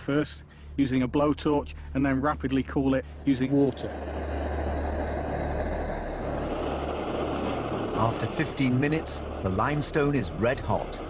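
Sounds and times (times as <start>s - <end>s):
blowtorch flame hissing: 3.2s - 11.0s.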